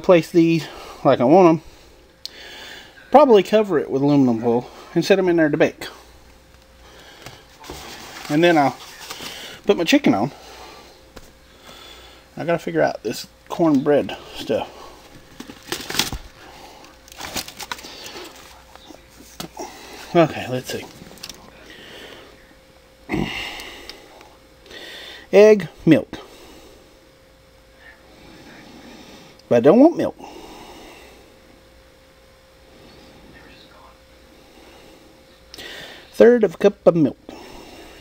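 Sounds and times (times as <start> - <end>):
faint steady hum: 0.0 - 38.0
person breathing in: 1.7 - 3.0, 10.4 - 12.3, 23.1 - 25.3, 34.4 - 36.1.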